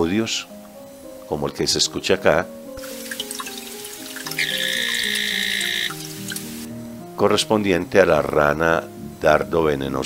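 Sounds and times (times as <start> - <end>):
soft background music: 0.0 - 10.0
frog calling: 2.9 - 6.7.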